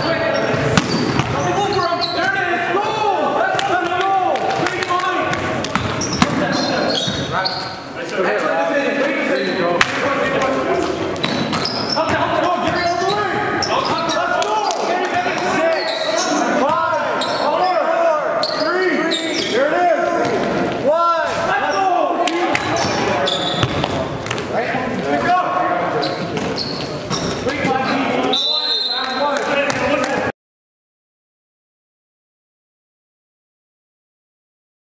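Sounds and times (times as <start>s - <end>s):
sneakers squeaking: 0.0s - 2.5s, 5.2s - 8.0s, 9.2s - 20.7s, 22.5s - 24.5s, 25.2s - 29.4s
players calling out: 0.0s - 30.2s.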